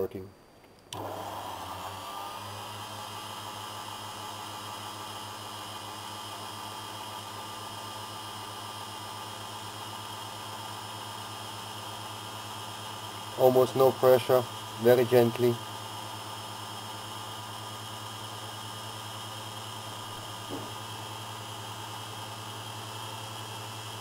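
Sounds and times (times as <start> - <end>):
lathe motor whine and hum: 0.9 - 24.0
even hiss: 13.2 - 15.8.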